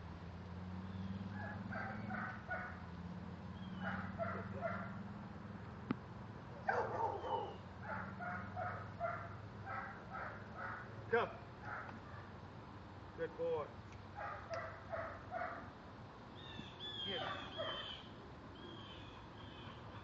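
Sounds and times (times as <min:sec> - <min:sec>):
dog barking: 0:01.4 - 0:02.8, 0:03.8 - 0:05.0, 0:06.6 - 0:10.9, 0:11.6 - 0:12.3, 0:14.2 - 0:15.7, 0:17.1 - 0:17.9.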